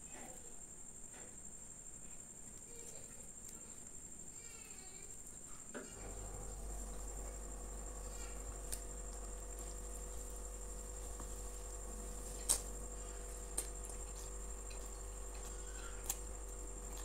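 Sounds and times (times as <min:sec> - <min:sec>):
low hum: 0:05.9 - 0:17.0
fingers tearing flatbread: 0:12.3 - 0:17.0.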